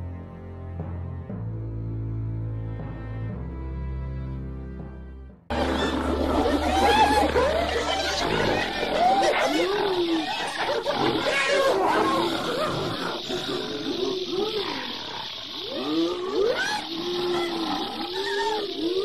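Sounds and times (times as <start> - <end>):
chorus of animal cries: 5.5 - 19.0.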